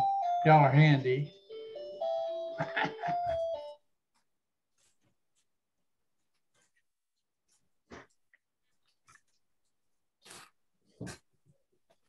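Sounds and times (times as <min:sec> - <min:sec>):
electronic doorbell chime: 0:00.0 - 0:03.8
people laughing: 0:02.5 - 0:03.6.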